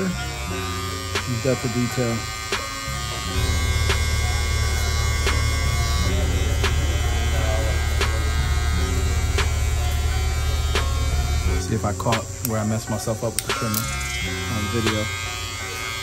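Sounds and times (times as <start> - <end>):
hair trimmer buzzing: 0.0 - 16.0.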